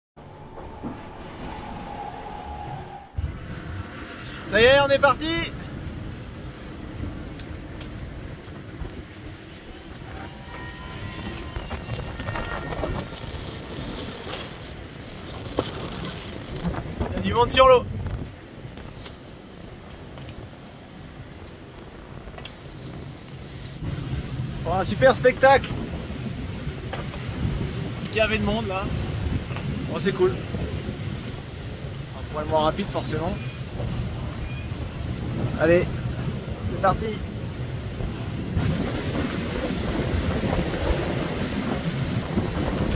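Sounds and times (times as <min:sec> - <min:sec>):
faint whistling tones: 0:00.2 - 0:03.2, 0:33.2 - 0:33.7, 0:34.3 - 0:35.1
sea noise: 0:00.2 - 0:42.9
wind and water rushing: 0:00.2 - 0:42.9.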